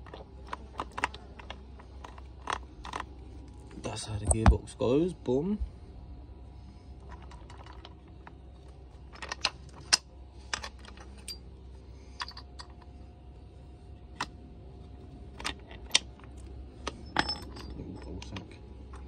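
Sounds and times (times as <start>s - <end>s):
metal gears clicking and tapping: 15.4s - 19.0s.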